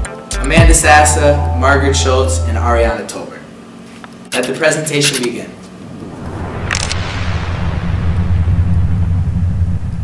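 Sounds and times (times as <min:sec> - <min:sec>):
low rumble with hum: 0:05.6 - 0:10.0.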